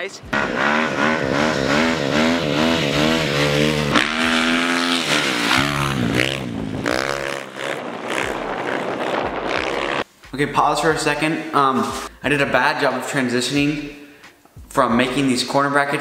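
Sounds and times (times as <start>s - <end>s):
dirt bike engine revving: 0.0s - 10.1s.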